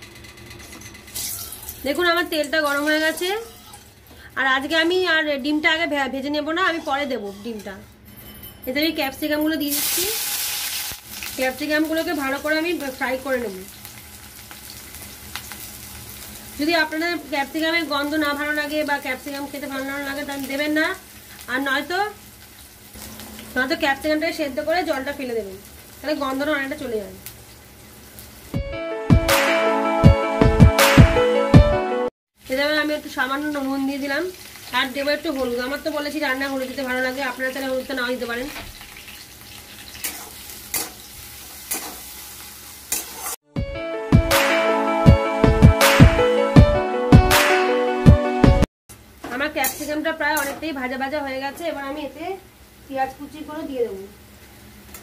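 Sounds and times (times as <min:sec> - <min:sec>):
metal spatula scraping a wok: 0:06.5 - 0:07.9, 0:39.8 - 0:42.2, 0:42.8 - 0:43.4, 0:49.6 - 0:50.7
vegetables sizzling in hot oil: 0:09.6 - 0:28.6, 0:32.4 - 0:43.4, 0:48.9 - 0:55.0
music with a beat: 0:28.6 - 0:32.0, 0:43.6 - 0:48.7.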